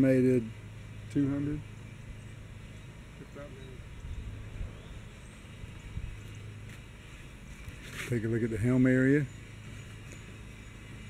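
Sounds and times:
low steady rumbling: 0.0s - 11.0s.

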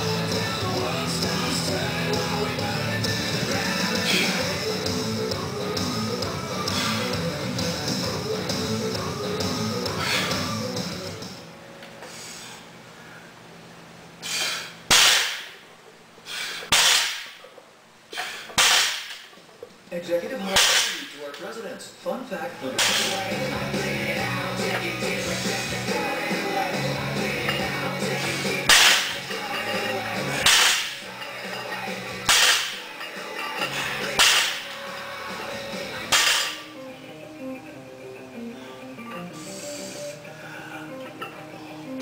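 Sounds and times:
background music: 0.0s - 11.8s, 22.4s - 42.0s
man breathing forcefully: 14.2s - 14.9s, 16.2s - 16.9s
iron plates banging on floor: 28.7s - 34.8s, 36.1s - 36.6s.

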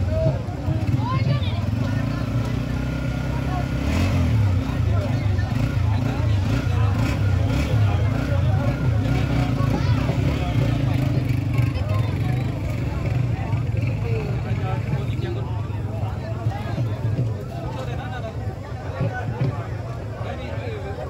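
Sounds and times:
people talking: 0.0s - 21.0s.

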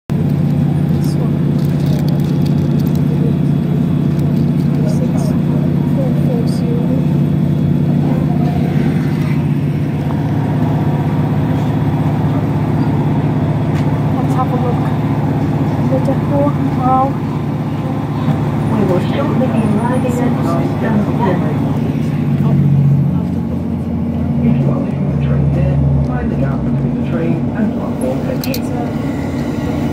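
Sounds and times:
train diesel engine droning: 0.1s - 29.9s.

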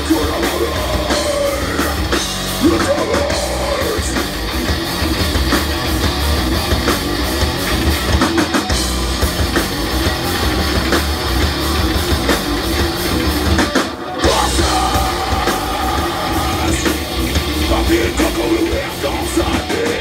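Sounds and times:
bass guitar: 0.0s - 20.0s
distorted electric guitars: 0.0s - 20.0s
drum kit: 0.0s - 20.0s.

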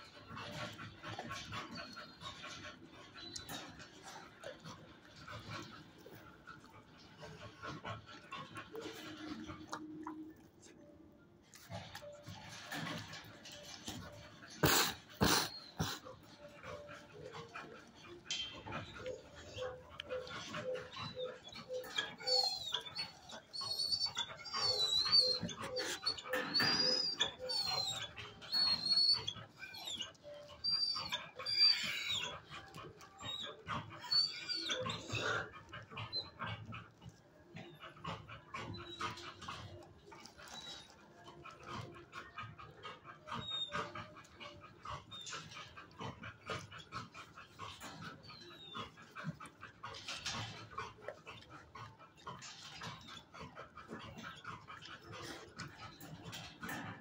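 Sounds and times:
dogs whining: 0.0s - 57.0s
dogs barking: 11.8s - 57.0s.

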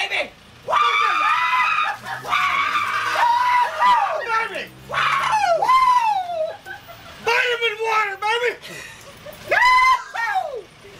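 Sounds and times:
men whooping and yelling: 0.0s - 10.9s.

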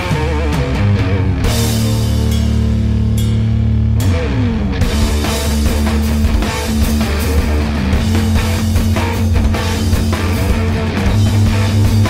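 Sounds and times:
distorted guitar and bass: 0.0s - 12.0s
drum hit: 0.1s - 12.0s.

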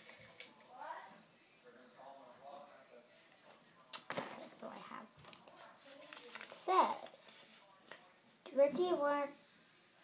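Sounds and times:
paper rustling and crinkling: 4.1s - 7.8s.

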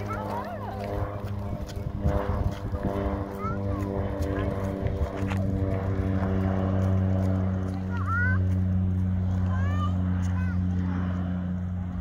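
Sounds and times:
propeller plane engine drone: 0.0s - 12.0s.

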